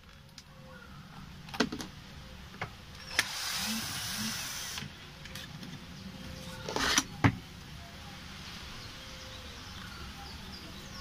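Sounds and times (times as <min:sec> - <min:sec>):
cordless drill motor running: 0:03.0 - 0:04.8.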